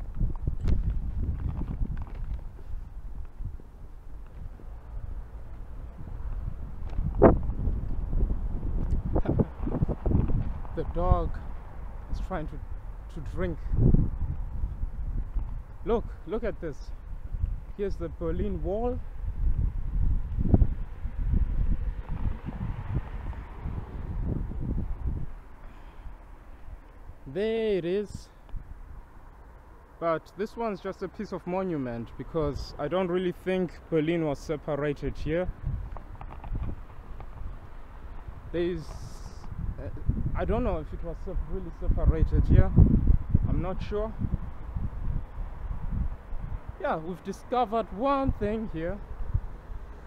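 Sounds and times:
wind rumbling on microphone: 0.0 - 29.5, 32.0 - 50.0
camera handling noise: 35.9 - 37.5.

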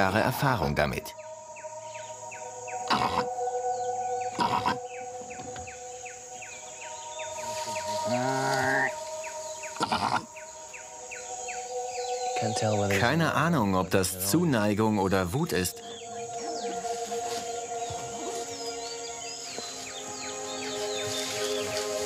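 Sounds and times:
background music of held chords: 0.0 - 22.0
rhythmic chirping: 0.0 - 22.0
rhinoceros call: 2.6 - 5.6, 7.5 - 10.5.

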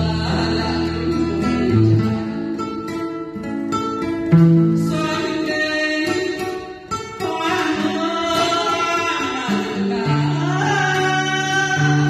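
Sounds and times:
person singing with accompaniment: 0.0 - 12.0.

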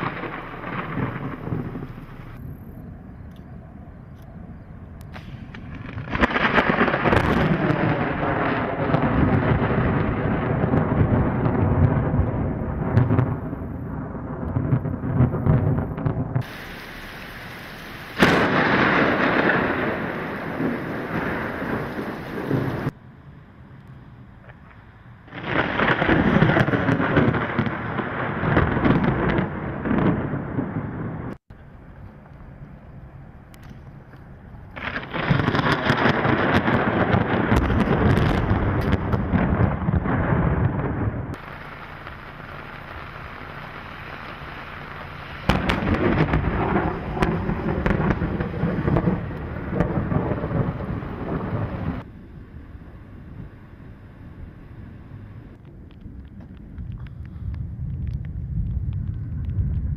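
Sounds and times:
sharp thunder crack: 0.0 - 2.8, 5.1 - 23.0, 25.3 - 31.4, 34.8 - 52.1
thunder rumbling: 0.0 - 59.9.

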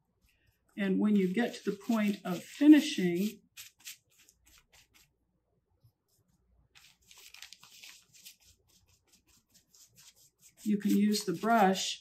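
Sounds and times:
paintbrush scratching on fabric: 0.7 - 5.1, 7.6 - 12.0.

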